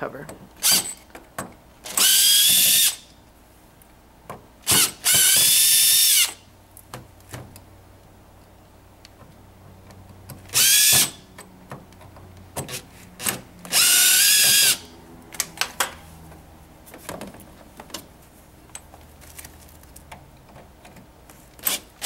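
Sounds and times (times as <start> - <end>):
drill motor whine: 1.9 - 3.0, 4.7 - 6.4, 10.5 - 11.2, 13.7 - 14.9.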